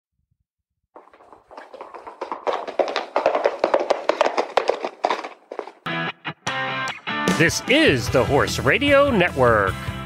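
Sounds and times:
rapid clatter of knocks: 0:01.0 - 0:05.8.

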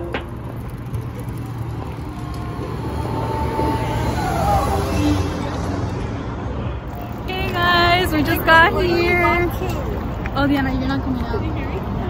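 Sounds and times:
cars moving through parking lot: 0:00.0 - 0:12.0.

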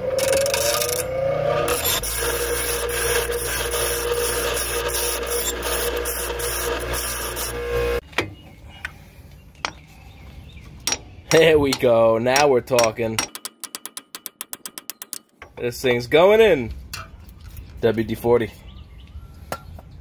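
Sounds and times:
bench grinder grinding: 0:00.0 - 0:08.0.

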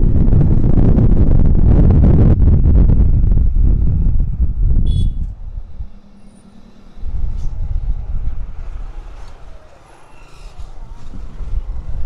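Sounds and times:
wind on microphone: 0:00.0 - 0:09.6, 0:10.4 - 0:12.0
motorcycle engine: 0:04.4 - 0:09.9
brief high squeak: 0:09.9 - 0:10.9.

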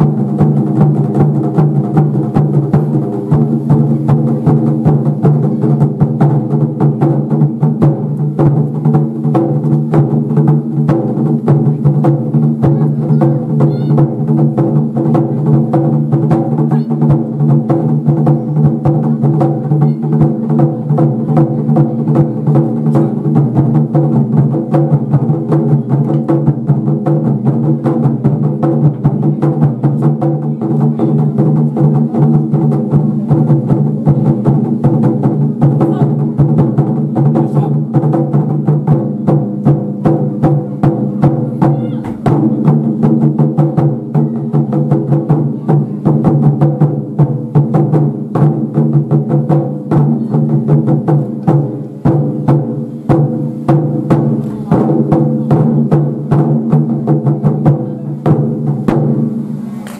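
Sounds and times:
taiko drums playing: 0:00.0 - 0:59.9.

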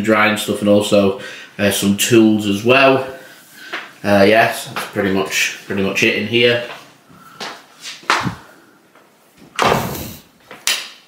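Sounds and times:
door banging shut: 0:09.6 - 0:10.2.

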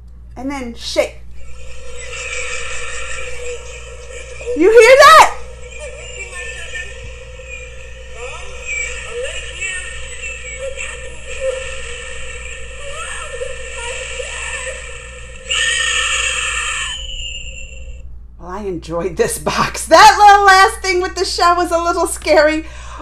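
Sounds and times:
faint wavering voice-like sounds: 0:01.4 - 0:17.8
rush of noise: 0:01.4 - 0:18.0.

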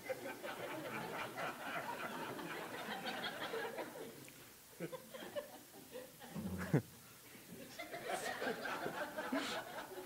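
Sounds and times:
audience chuckling and murmuring: 0:00.0 - 0:10.0
quiet laughter: 0:00.0 - 0:10.0.

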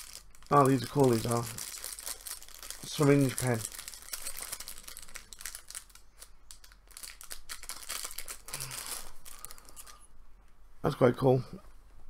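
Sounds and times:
plastic packaging crinkling: 0:00.0 - 0:10.1.

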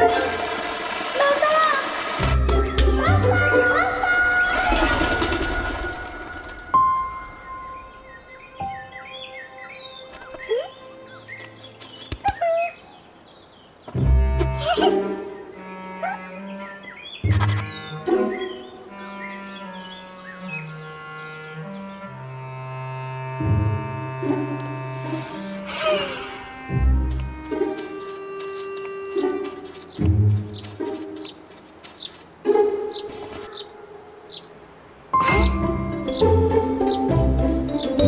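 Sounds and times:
birds chirping: 0:00.0 - 0:38.0
cartoon background music: 0:01.1 - 0:07.2, 0:14.0 - 0:30.4, 0:35.2 - 0:38.0.

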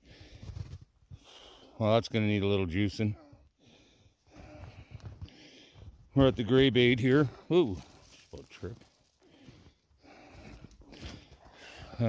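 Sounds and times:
footsteps crunching through snow: 0:07.7 - 0:11.9.

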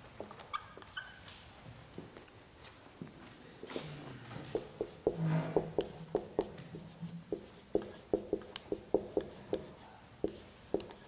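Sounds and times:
marker pen scratching on paper: 0:04.5 - 0:11.0.

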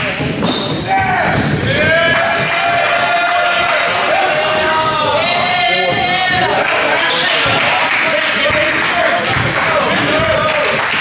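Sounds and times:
sneakers squeaking: 0:00.0 - 0:08.8, 0:09.4 - 0:10.5
players' voices: 0:00.0 - 0:11.0.

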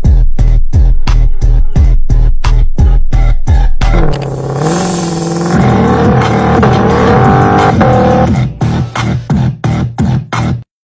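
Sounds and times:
car engine revving: 0:03.8 - 0:08.5
music track: 0:03.8 - 0:09.5.

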